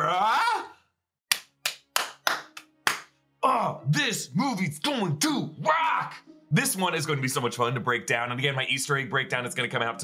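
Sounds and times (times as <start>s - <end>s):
person clapping hands: 1.3s - 3.2s.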